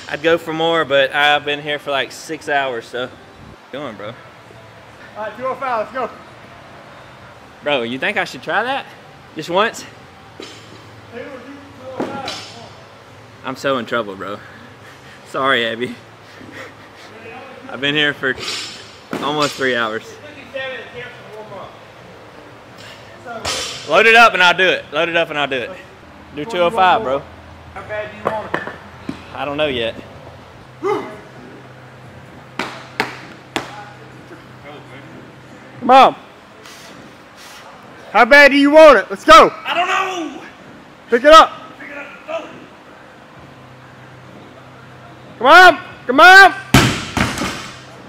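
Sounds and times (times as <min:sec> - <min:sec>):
steady low hum: 0:00.0 - 0:38.2.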